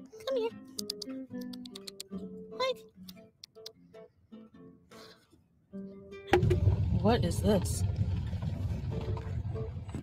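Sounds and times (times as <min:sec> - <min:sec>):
car cabin engine and road noise: 0:06.3 - 0:10.0.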